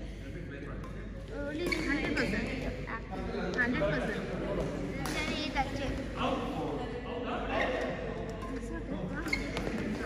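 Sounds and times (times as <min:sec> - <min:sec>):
rackets striking shuttlecock: 0:00.8 - 0:02.2, 0:04.6 - 0:05.4.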